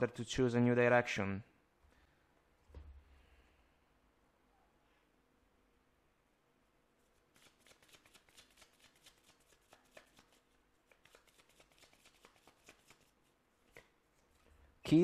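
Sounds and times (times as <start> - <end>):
cards shuffled by hand: 7.3 - 14.5.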